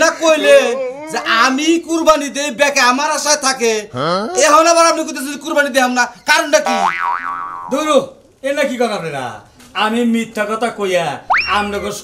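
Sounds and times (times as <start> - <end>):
men talking: 0.0 - 6.9, 7.6 - 12.0
cartoon boing sound effect: 6.7 - 7.7, 11.3 - 11.8.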